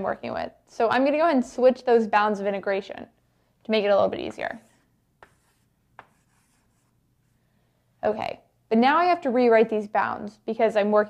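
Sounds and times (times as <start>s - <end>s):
chalk tapping on blackboard: 4.3s - 7.0s
chalk scratching on blackboard: 4.4s - 7.4s.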